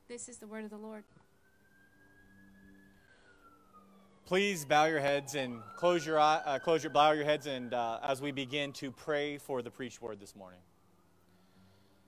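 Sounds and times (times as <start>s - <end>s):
faint siren wailing: 0.0s - 12.0s.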